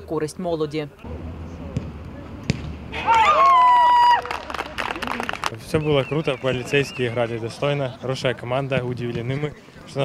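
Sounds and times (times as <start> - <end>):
ball kicks: 1.7 - 2.9
players shouting: 2.4 - 4.9.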